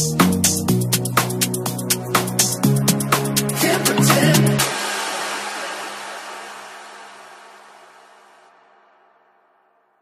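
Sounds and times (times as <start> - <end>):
electronic noise wash: 3.7 - 10.0.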